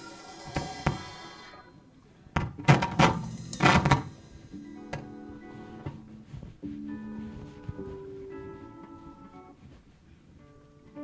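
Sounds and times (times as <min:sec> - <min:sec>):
loud drum kit hits: 0:00.1 - 0:01.2, 0:02.5 - 0:05.1.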